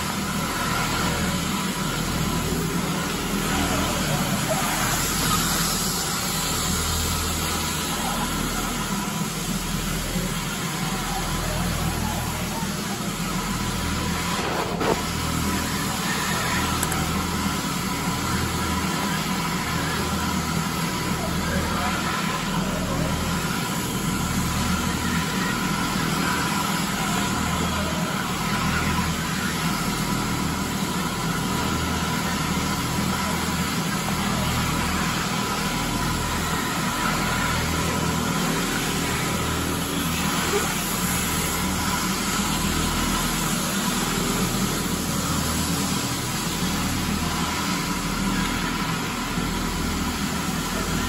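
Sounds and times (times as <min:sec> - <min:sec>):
floor scrubber running: 0:00.0 - 0:51.0.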